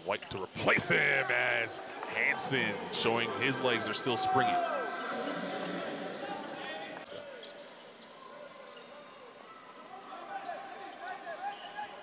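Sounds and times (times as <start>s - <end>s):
crowd noise in large hall: 0.0s - 12.0s.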